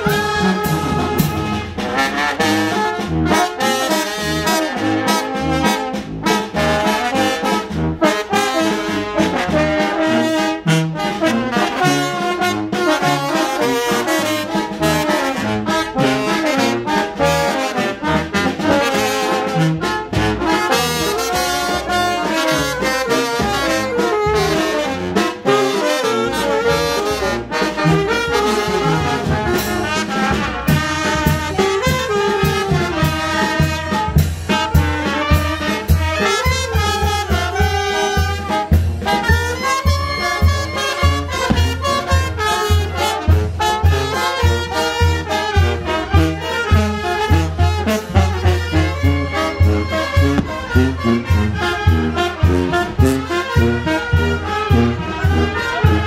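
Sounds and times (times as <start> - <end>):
brass band playing: 0.0 - 56.0
steady low beat: 48.4 - 53.2.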